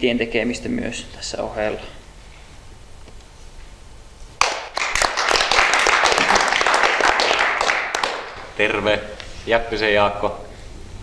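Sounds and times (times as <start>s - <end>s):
people applauding: 4.4s - 8.5s.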